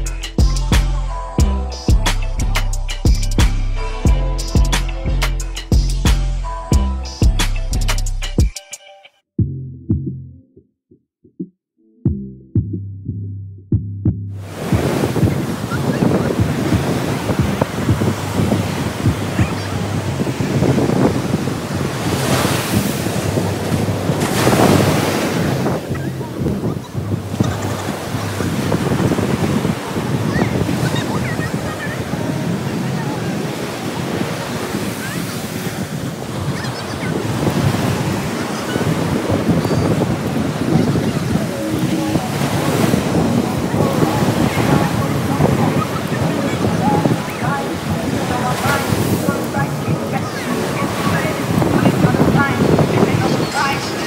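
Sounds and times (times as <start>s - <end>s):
surf breaking on beach: 14.4s - 54.0s
wind buffeting microphone: 14.4s - 54.0s.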